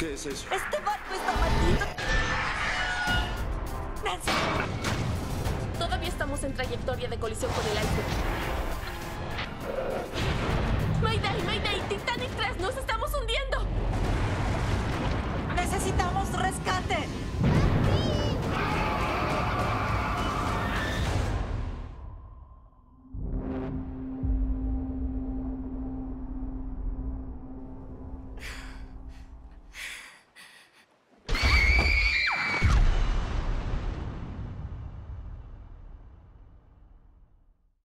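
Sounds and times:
dramatic trailer music: 0:00.0 - 0:29.8
people screaming in panic: 0:01.6 - 0:03.4, 0:18.5 - 0:21.3, 0:31.3 - 0:32.8
shrill shriek: 0:01.9 - 0:03.4, 0:18.6 - 0:21.2, 0:31.3 - 0:32.7
breathy gasps: 0:28.4 - 0:30.9.

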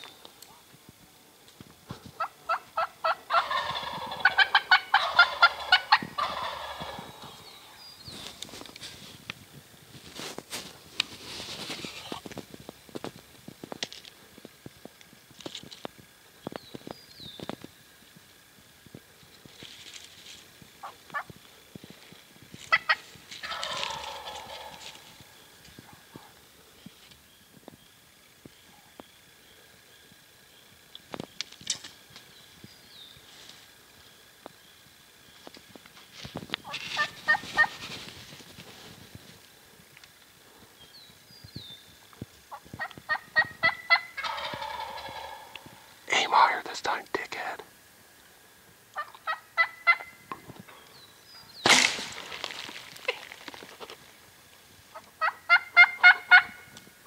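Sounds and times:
turkey gobbling: 0:02.2 - 0:07.5, 0:22.7 - 0:26.3, 0:36.6 - 0:37.8, 0:42.5 - 0:46.0, 0:48.9 - 0:50.3, 0:54.9 - 0:56.7.

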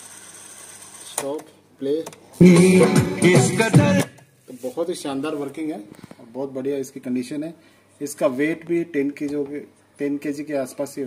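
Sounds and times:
cassette tape fast-forwarding whir: 0:00.0 - 0:01.3.

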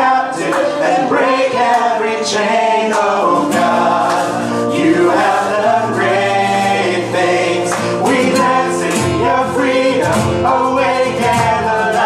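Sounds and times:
acoustic guitar: 0:00.0 - 0:12.0
worship band singing: 0:00.0 - 0:12.0.

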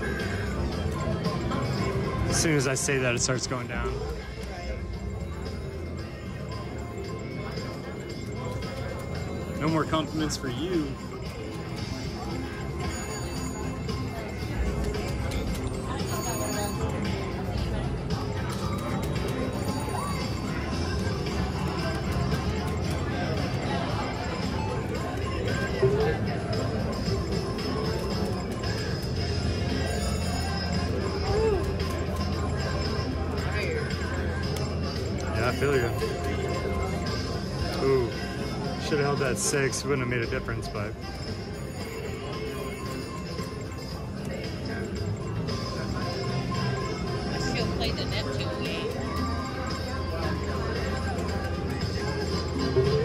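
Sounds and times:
background chatter: 0:00.0 - 0:53.0
background music: 0:00.0 - 0:53.0
slot machine noise: 0:00.0 - 0:53.0.

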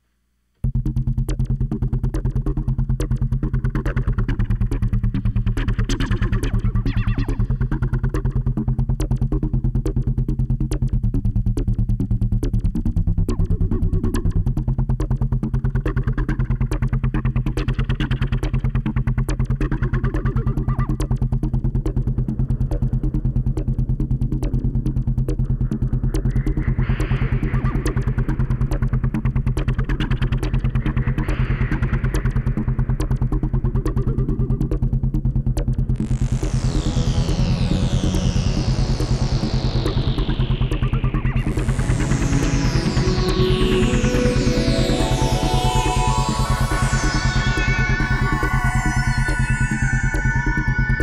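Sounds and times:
synthesizer music: 0:22.7 - 0:51.0.

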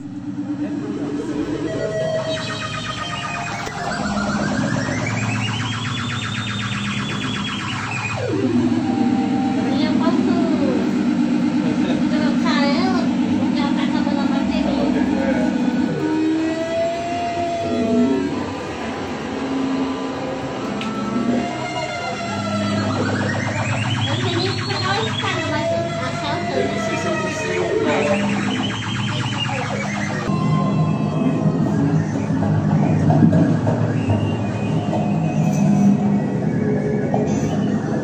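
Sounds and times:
buzzy synthesized tone: 0:00.0 - 0:38.0
low steady drone: 0:00.0 - 0:38.0
whistling glides and squeaks: 0:22.6 - 0:26.4, 0:27.3 - 0:38.0.

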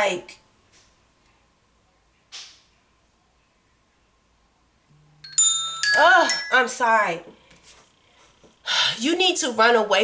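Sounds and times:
low buzz: 0:04.9 - 0:05.5.

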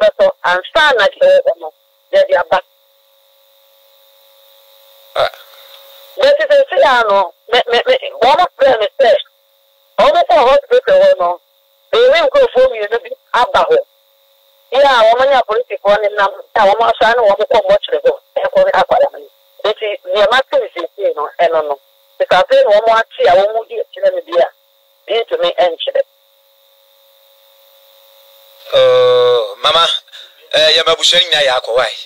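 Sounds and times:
electrical hum with hiss: 0:00.0 - 0:32.0
person talking: 0:14.7 - 0:24.5, 0:25.1 - 0:26.0, 0:28.6 - 0:32.0.

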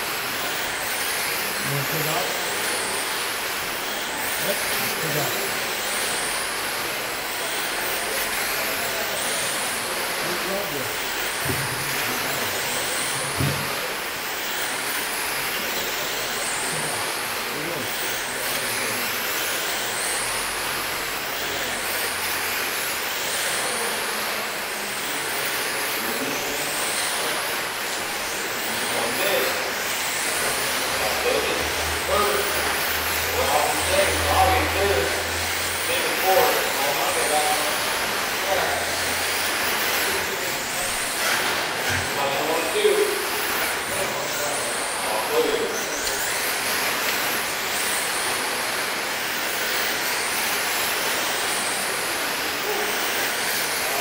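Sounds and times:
tyres and track noise hiss: 0:00.0 - 0:54.0
electric motor whine: 0:00.1 - 0:54.0.

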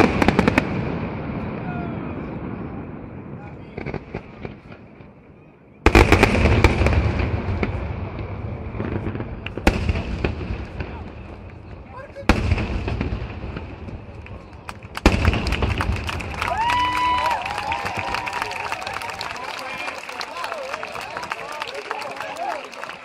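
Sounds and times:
fireworks crackling: 0:00.0 - 0:01.5, 0:05.8 - 0:23.0
fireworks booms: 0:00.0 - 0:18.7
loud firework burst: 0:05.8 - 0:18.8.

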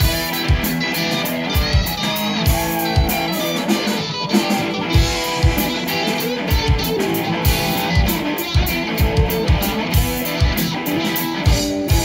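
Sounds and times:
electric guitars: 0:00.0 - 0:12.0.

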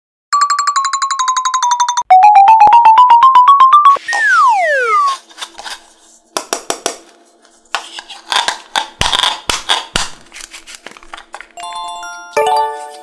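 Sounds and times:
electronic jingle beeps: 0:02.1 - 0:05.2.

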